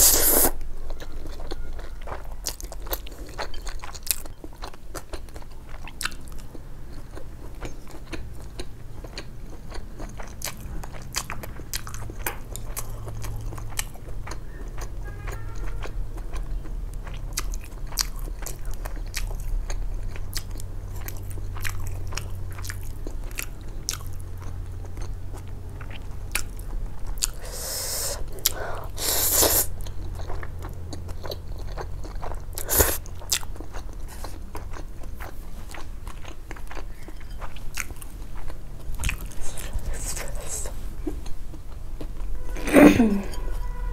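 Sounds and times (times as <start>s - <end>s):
wet chewing with mouth smacks: 29.8s - 42.3s.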